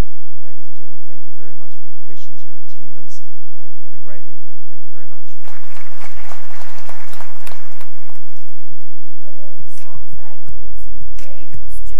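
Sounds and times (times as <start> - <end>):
audience applauding: 5.4 - 9.0.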